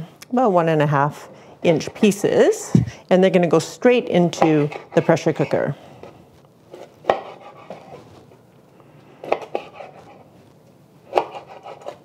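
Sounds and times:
knife cutting raw meat: 0:06.7 - 0:08.0, 0:09.2 - 0:10.2, 0:11.1 - 0:12.0.

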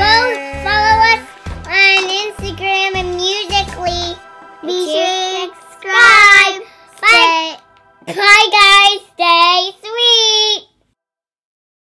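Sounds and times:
girl singing a high note: 0:00.0 - 0:10.7.

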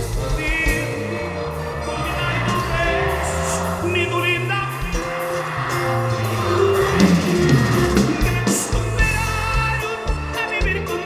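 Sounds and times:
drums: 0:00.0 - 0:11.0
live band music: 0:00.0 - 0:11.0
stepping bass line: 0:00.0 - 0:11.0.

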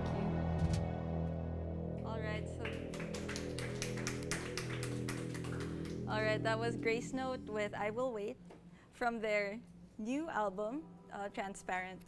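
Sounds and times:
band final chord ringing: 0:00.4 - 0:08.5.

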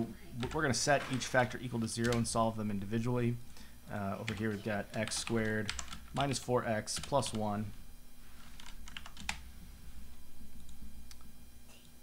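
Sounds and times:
computer keyboard keystrokes: 0:04.3 - 0:06.3, 0:08.6 - 0:09.4.

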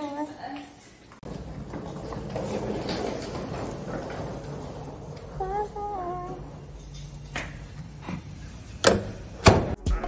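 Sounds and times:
wooden door latching shut: 0:08.8 - 0:09.8.

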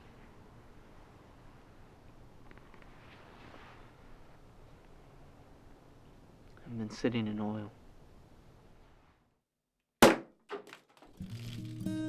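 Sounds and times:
sparkling wine bottle popping: 0:11.0 - 0:12.0
guitar music: 0:11.2 - 0:12.0
wine spraying: 0:11.2 - 0:12.0.

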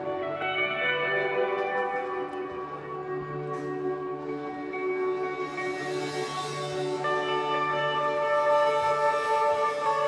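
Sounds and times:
live band instrumental: 0:00.0 - 0:10.0
sustained guitar chords: 0:00.0 - 0:10.0.

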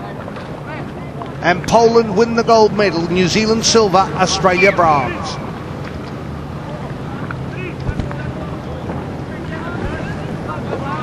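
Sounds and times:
distant voices calling out: 0:00.5 - 0:11.0.

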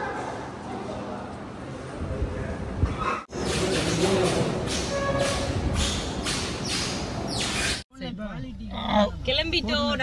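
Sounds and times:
woman talking: 0:07.9 - 0:10.0.

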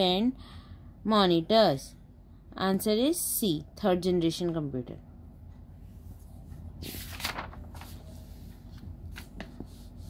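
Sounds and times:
paper page rustling: 0:06.2 - 0:10.0.

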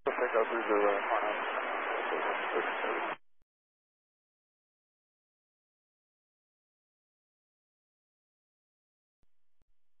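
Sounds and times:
pilot speaking over radio: 0:00.0 - 0:03.2
radio static: 0:00.0 - 0:03.2.

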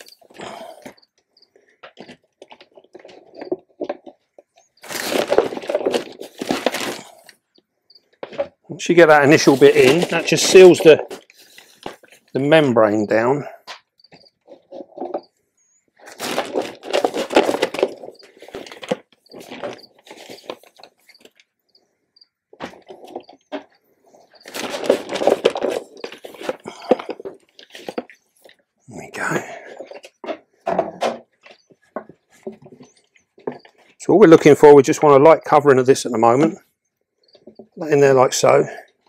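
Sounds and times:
compost rustling and pattering: 0:01.8 - 0:07.3, 0:08.2 - 0:13.3, 0:16.0 - 0:21.4, 0:22.6 - 0:34.6.

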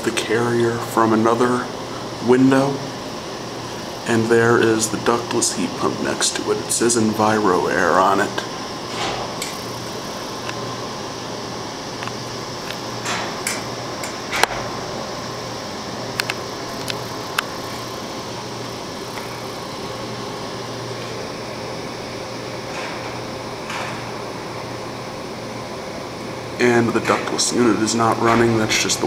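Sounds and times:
air conditioner unit humming: 0:00.0 - 0:29.0.

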